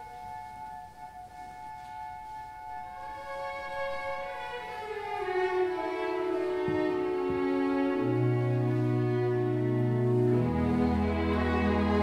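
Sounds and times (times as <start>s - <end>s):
orchestral music with bowed strings: 0.0s - 12.0s.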